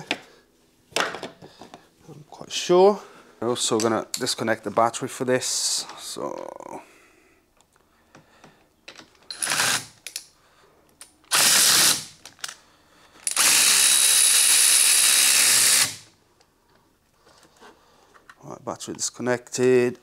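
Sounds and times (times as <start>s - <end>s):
power tool whirring: 9.3s - 10.0s, 11.3s - 12.2s, 13.2s - 16.1s.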